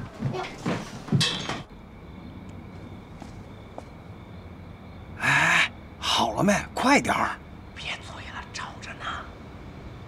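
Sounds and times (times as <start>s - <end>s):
knocks and rustles of people: 0.0s - 1.7s.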